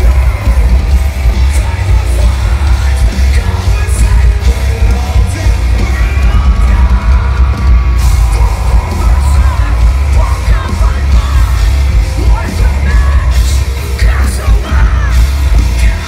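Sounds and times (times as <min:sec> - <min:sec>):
booming bass: 0:00.0 - 0:16.0
drums: 0:00.0 - 0:16.0
heavy guitars: 0:00.0 - 0:16.0
vocalist yelling and singing: 0:00.0 - 0:16.0.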